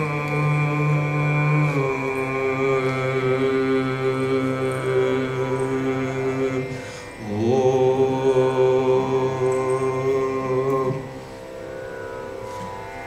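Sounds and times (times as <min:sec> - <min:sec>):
man singing long held notes: 0:00.0 - 0:11.3
steady drone: 0:00.0 - 0:13.0.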